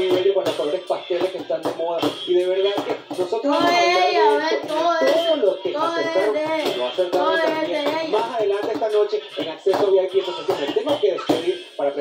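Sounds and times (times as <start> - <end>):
child singing: 3.4 - 11.6.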